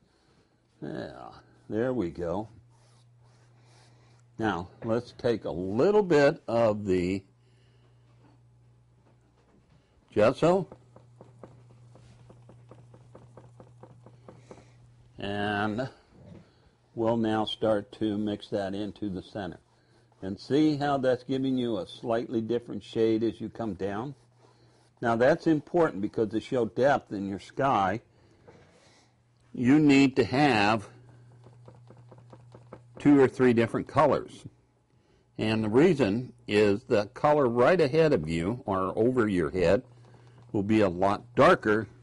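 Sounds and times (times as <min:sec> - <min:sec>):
steady low hum: 0:00.0 - 0:42.0
paintbrush tapping on palette: 0:10.6 - 0:14.8.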